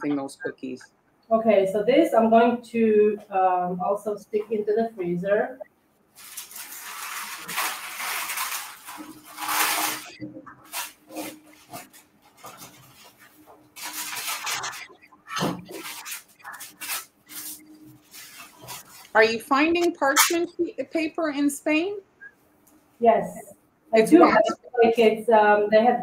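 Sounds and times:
parchment paper rustling: 0:06.1 - 0:20.6.

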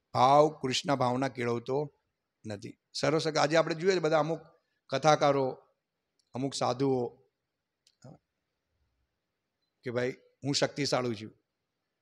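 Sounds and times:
man speaking: 0:00.1 - 0:05.6, 0:06.3 - 0:07.2, 0:09.9 - 0:11.3.

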